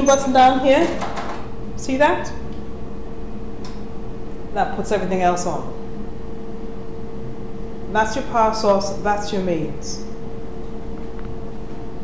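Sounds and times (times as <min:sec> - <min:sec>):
steady electronic hum: 0:00.0 - 0:12.0.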